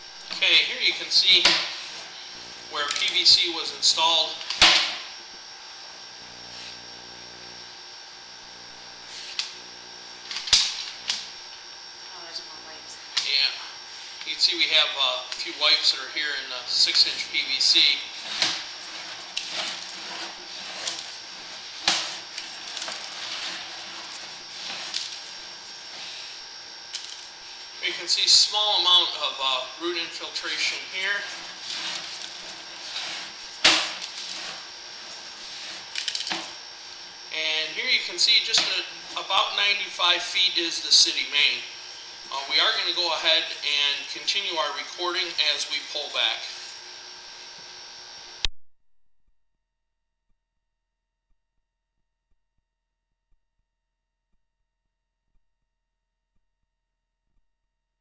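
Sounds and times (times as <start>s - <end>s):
cable feeding hiss: 0.0s - 48.5s
electrical hum and high whine: 0.0s - 48.5s.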